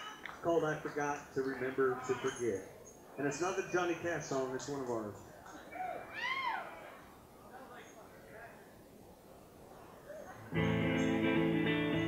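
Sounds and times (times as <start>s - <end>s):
high whoop from a voice: 5.8s - 6.7s.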